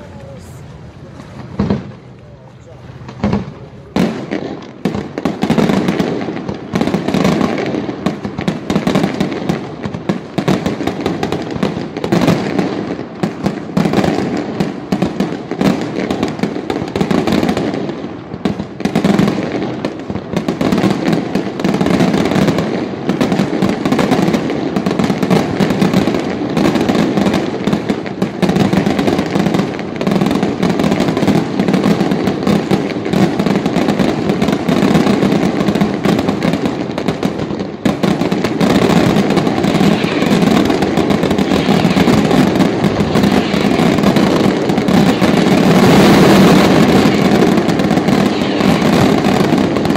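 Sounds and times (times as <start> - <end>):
firework shells bursting: 18.6 - 49.9.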